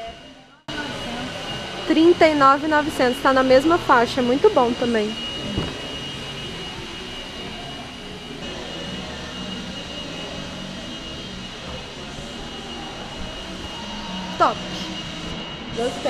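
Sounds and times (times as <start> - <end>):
large hall background roar: 0.0 - 16.0
thin high whine: 0.0 - 16.0.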